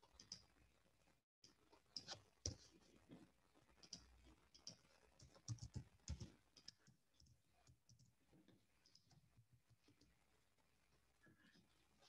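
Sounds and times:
computer keyboard keystrokes: 0:04.6 - 0:06.8.

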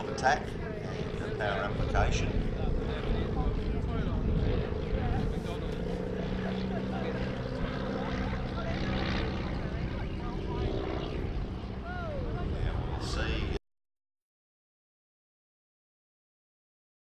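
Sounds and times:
propeller aircraft engine drone: 0:00.0 - 0:13.6
wind rumbling on microphone: 0:00.0 - 0:13.6.

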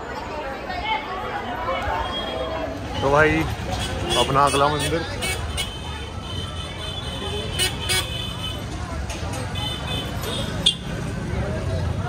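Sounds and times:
people chattering: 0:00.0 - 0:12.0
traffic rumble: 0:00.0 - 0:12.0.

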